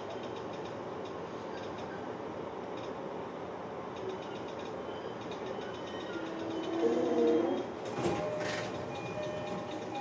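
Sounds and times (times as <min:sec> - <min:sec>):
train wheels rumbling on rails: 0:03.9 - 0:10.0.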